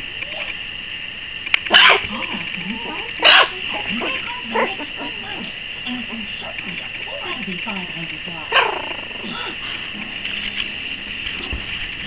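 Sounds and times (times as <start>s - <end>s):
puppy barking: 1.7s - 5.6s, 8.5s - 9.6s.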